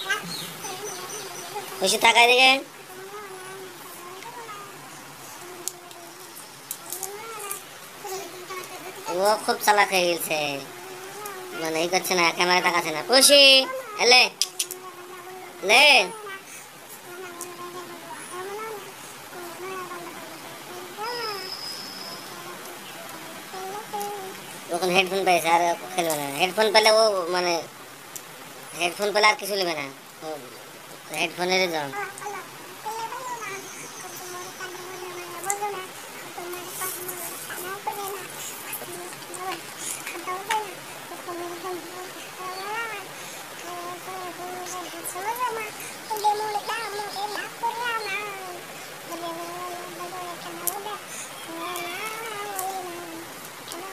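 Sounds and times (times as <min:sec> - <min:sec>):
thin steady high tone: 0:00.0 - 0:27.7, 0:31.2 - 0:53.9.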